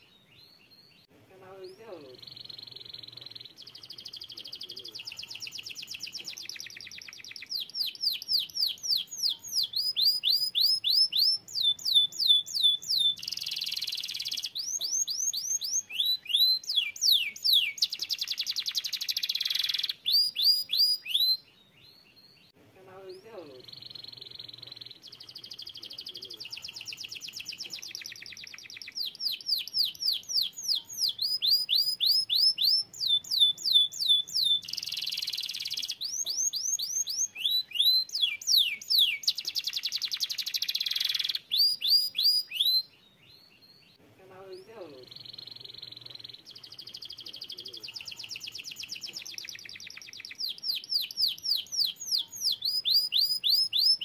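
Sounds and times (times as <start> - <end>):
canary singing: 0.0 - 54.0.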